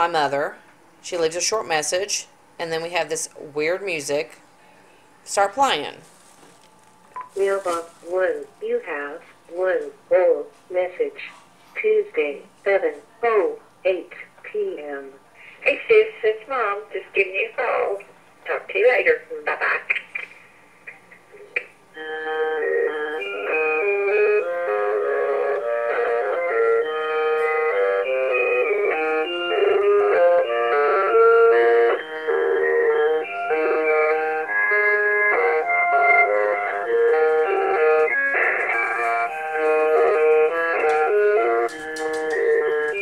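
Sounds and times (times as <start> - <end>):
thin organ chords through speaker: 21.0 - 43.0.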